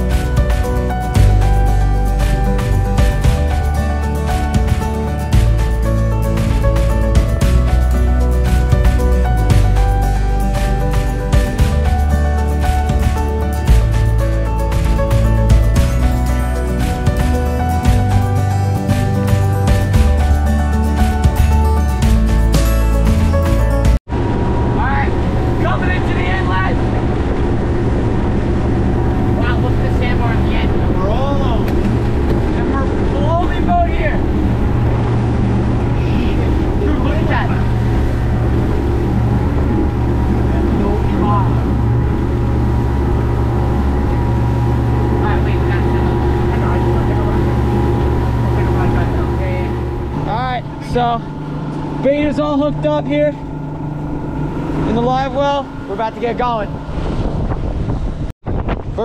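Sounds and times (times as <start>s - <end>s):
boat engine drone: 0.0s - 58.3s
rough water splashing: 0.0s - 58.3s
wind: 0.0s - 59.0s
voices calling: 29.2s - 56.8s.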